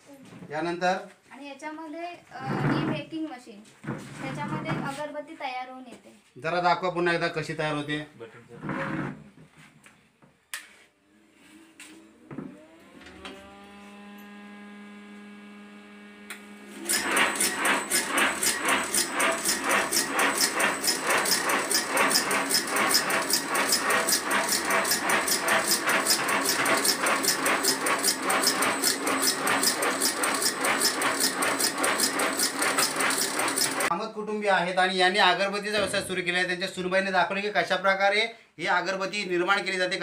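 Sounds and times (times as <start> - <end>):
electric motor humming: 11.1 - 33.9
machine rhythmic clatter: 16.9 - 33.9.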